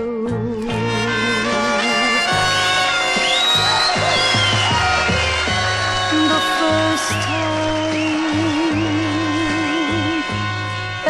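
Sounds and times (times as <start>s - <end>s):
orchestra playing pop medley: 0.6s - 11.0s.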